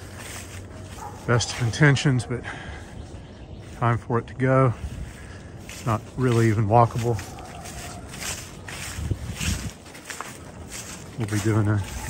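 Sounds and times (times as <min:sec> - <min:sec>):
footsteps on grass and leaves: 0:00.0 - 0:12.0.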